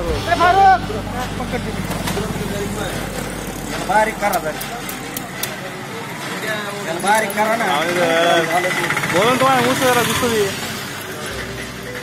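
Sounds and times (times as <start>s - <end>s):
people talking: 0.0s - 11.6s
engine running: 0.0s - 12.0s.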